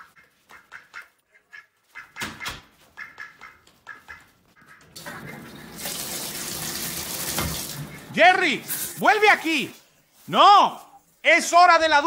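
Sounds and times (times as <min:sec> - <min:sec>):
duck quacking: 0:00.0 - 0:05.6
faucet water running: 0:04.9 - 0:09.8.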